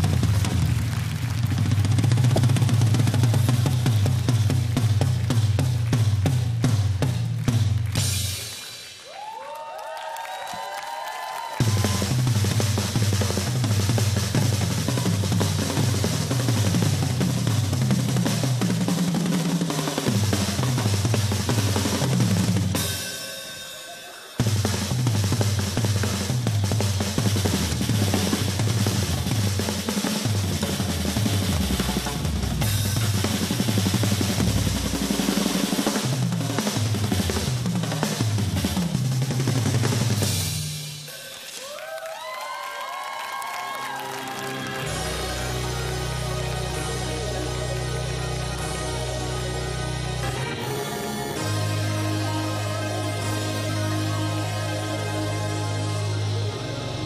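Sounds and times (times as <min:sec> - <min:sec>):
drum kits playing fast rolls: 0:00.0 - 0:57.0
cymbals: 0:11.4 - 0:42.0, 0:44.3 - 0:57.0.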